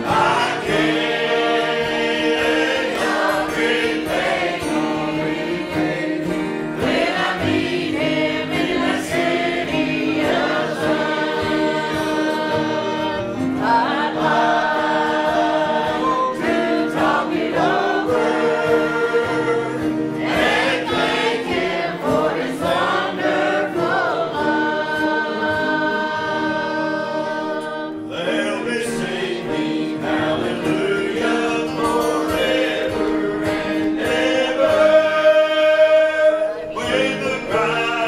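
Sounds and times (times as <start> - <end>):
group singing a hymn: 0.0 - 38.0.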